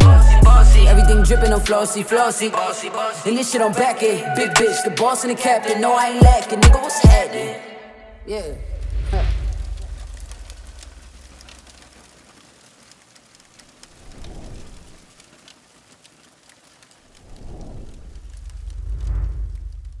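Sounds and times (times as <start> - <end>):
fire crackling: 0.0 - 7.1, 8.2 - 20.0
low rumbling swells: 8.2 - 11.8, 17.2 - 20.0.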